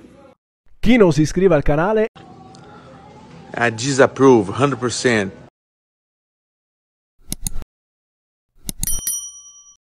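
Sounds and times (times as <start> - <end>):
bright bell ding: 8.8 - 9.8.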